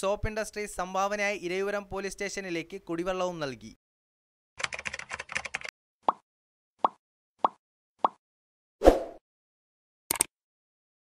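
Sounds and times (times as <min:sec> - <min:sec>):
pop sound effects: 0:06.8 - 0:08.2.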